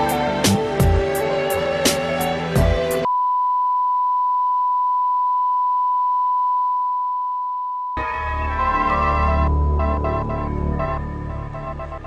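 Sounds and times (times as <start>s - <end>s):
music with a beat: 0.0s - 3.1s.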